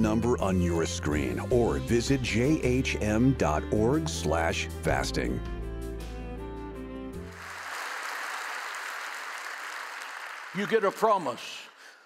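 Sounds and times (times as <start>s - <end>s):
crowd applauding: 7.2s - 12.0s.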